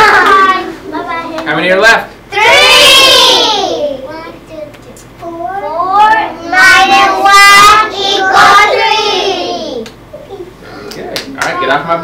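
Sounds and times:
children calling out sing-song: 0:05.4 - 0:09.9.

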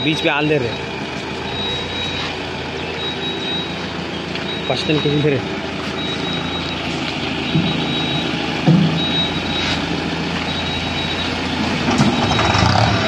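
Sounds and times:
tractor engines running under load: 0:00.0 - 0:13.0
high-pitched electronic beep: 0:01.5 - 0:13.0.

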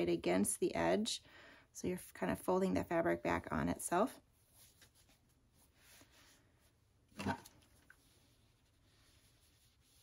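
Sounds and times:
fabric rustling: 0:04.3 - 0:10.0.

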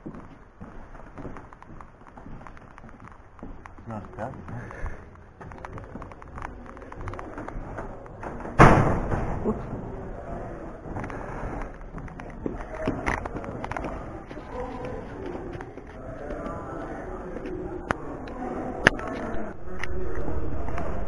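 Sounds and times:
footsteps: 0:00.0 - 0:21.0
faint voices: 0:02.5 - 0:21.0
heavy door thudding shut: 0:08.3 - 0:09.6.

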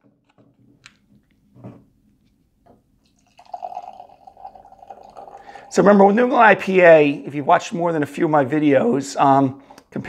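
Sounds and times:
beer pouring into a glass: 0:03.0 - 0:06.7.

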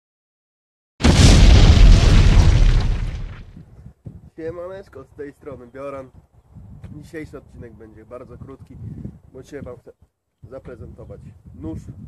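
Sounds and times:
loud explosion with deep rumble: 0:01.0 - 0:03.6.

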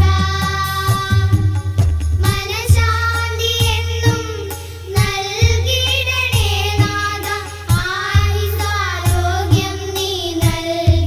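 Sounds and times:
devotional song singing: 0:00.0 - 0:11.0
percussion beats: 0:00.0 - 0:11.0.

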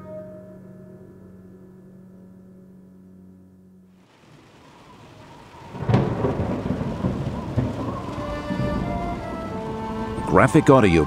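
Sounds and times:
rain: 0:03.9 - 0:11.0
rolling thunder rumble: 0:04.0 - 0:11.0
sustained music notes: 0:04.1 - 0:11.0
thunderclap: 0:04.1 - 0:11.0.

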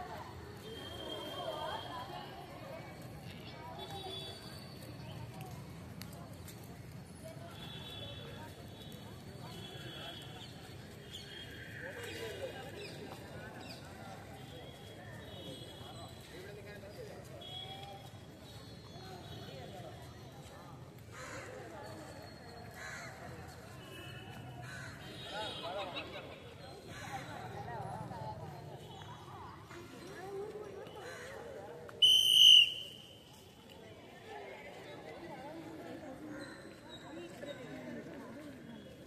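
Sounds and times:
faint crowd chatter: 0:00.0 - 0:39.0.

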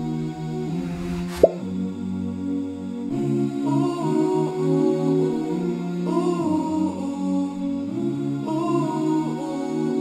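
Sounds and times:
wordless vocal humming: 0:00.0 - 0:10.0
rising plop sound effect: 0:01.2 - 0:01.7.

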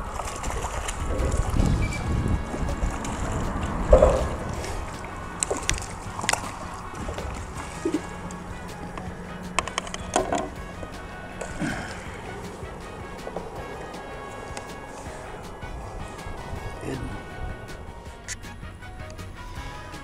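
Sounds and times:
background music: 0:00.0 - 0:20.0.

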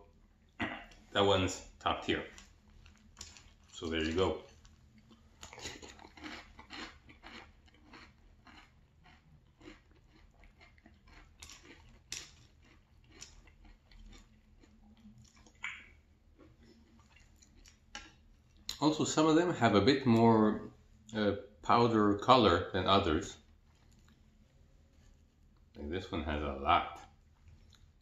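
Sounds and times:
chewing crunchy cereal: 0:02.0 - 0:18.8, 0:23.3 - 0:25.8, 0:27.0 - 0:28.0.

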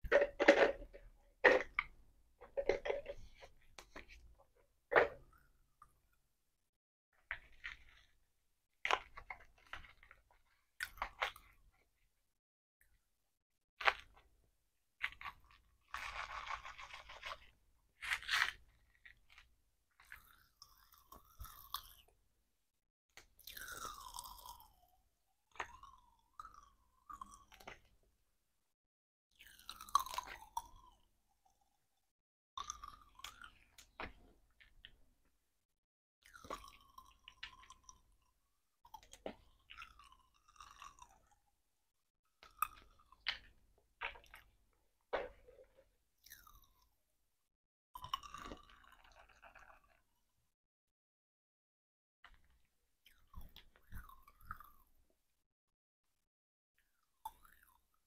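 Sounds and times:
plastic clicking and knocking: 0:00.0 - 0:04.1
chewing and crunching candy: 0:07.2 - 0:12.0, 0:15.0 - 0:22.2, 0:23.2 - 0:28.0, 0:29.3 - 0:31.9, 0:32.6 - 0:35.3, 0:36.2 - 0:47.0, 0:48.0 - 0:50.5, 0:52.3 - 0:55.2, 0:56.8 - 0:58.0.

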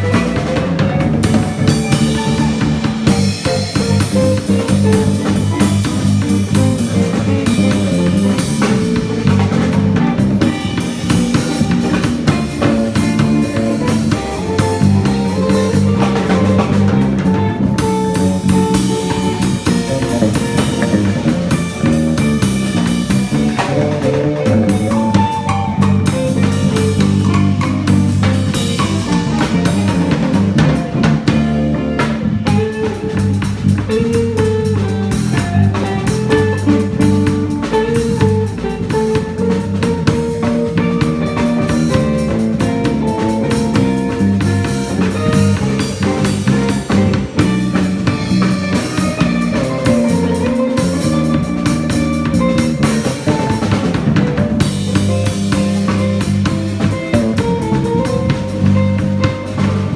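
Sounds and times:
drum kit and cymbals: 0:00.0 - 0:59.9
electric bass line: 0:00.0 - 0:59.9
electric guitar: 0:00.0 - 0:59.9.

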